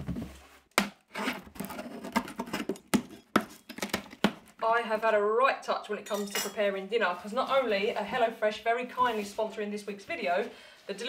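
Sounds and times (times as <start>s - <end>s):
cardboard rustling and scraping: 0.0s - 4.5s.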